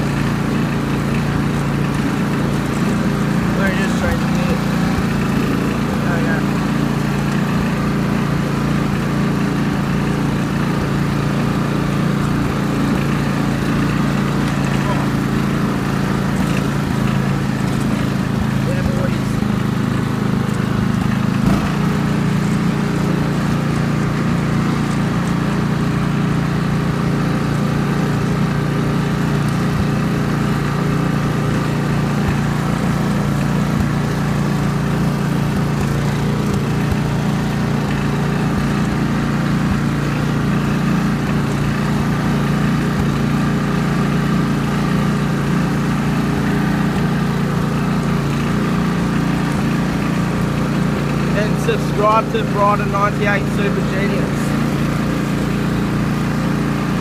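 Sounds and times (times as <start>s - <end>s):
ride-on lawn mower engine: 0.0s - 57.0s.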